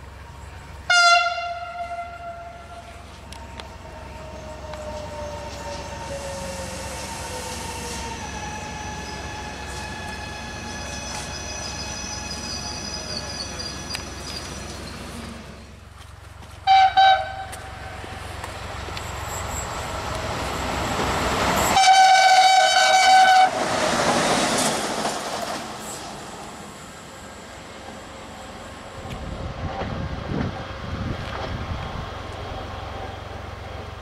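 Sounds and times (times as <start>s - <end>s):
train wheels rumbling on rails: 0.0s - 34.0s
train horn blasts: 0.9s - 3.0s, 16.6s - 17.9s, 21.7s - 23.7s.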